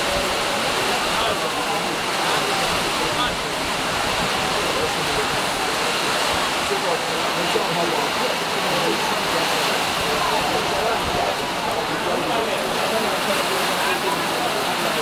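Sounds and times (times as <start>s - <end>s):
heavy rain falling: 0.0s - 15.0s
indistinct crowd chatter: 0.0s - 15.0s.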